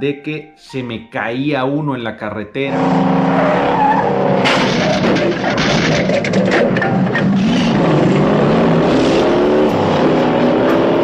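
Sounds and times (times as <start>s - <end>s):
car engines revving: 2.7s - 11.0s.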